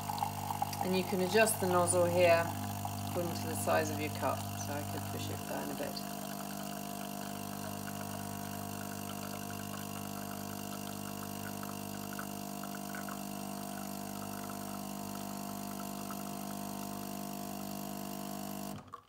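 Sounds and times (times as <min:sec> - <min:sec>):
coffee machine pump humming: 0:00.0 - 0:19.0
coffee trickling into mug: 0:00.0 - 0:19.0.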